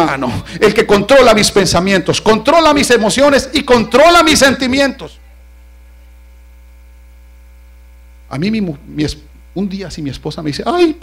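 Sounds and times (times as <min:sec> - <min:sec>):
speech: 0:00.0 - 0:05.4, 0:08.3 - 0:11.0
electrical mains hum: 0:00.0 - 0:11.0.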